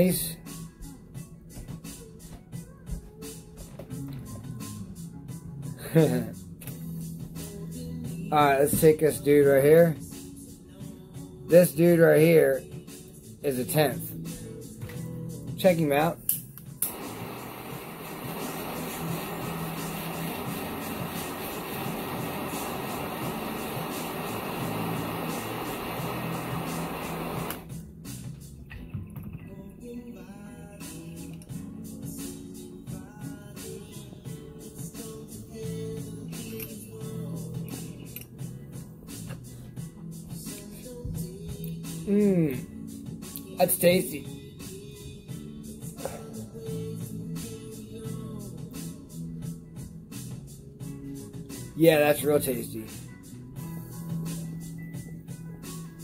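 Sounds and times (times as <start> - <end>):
background music: 0.0 - 56.0
butane torch hissing: 16.8 - 27.7.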